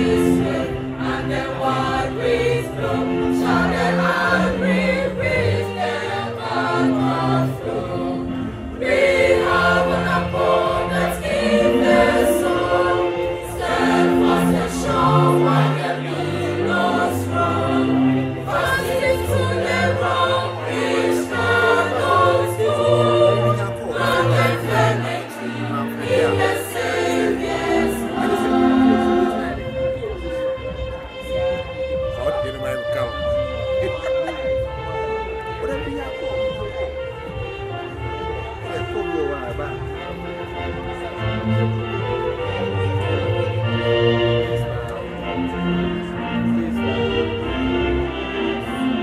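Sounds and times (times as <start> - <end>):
choir singing in harmony: 0.0 - 35.5, 40.8 - 49.0.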